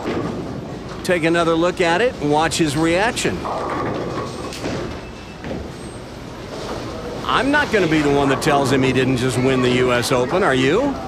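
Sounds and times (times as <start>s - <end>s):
bowling alley rumble: 0.0s - 11.0s.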